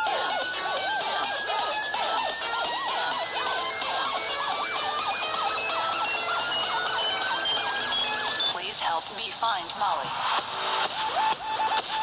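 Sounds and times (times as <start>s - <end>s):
siren-like synth lead: 0.0s - 8.6s.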